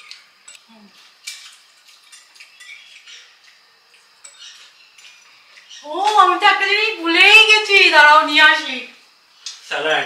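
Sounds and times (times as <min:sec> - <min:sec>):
cutlery clinking on plates: 0:00.0 - 0:05.7
cutlery scraping plates: 0:01.2 - 0:05.8.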